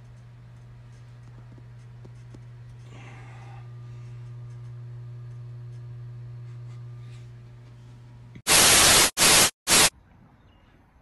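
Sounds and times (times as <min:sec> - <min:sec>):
static hiss burst: 0:08.5 - 0:09.9.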